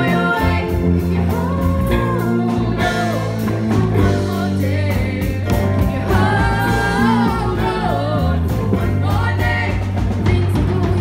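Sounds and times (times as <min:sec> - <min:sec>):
drums: 0:00.0 - 0:11.0
electric bass guitar: 0:00.0 - 0:11.0
singers singing in harmony: 0:00.0 - 0:11.0.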